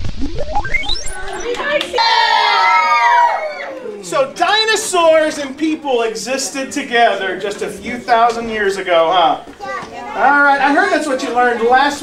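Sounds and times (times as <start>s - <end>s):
children cheering and shouting: 1.0s - 4.1s.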